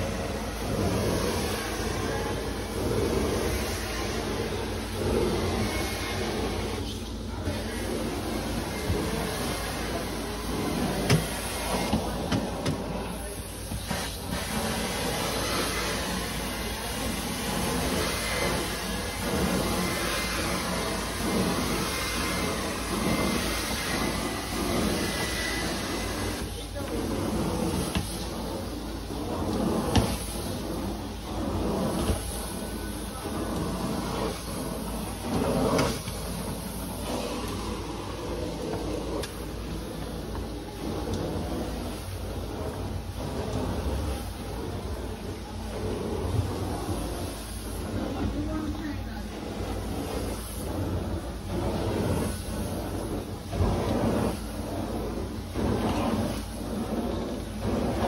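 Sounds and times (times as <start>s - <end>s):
carpet cleaner suction hiss: 0.0s - 58.0s.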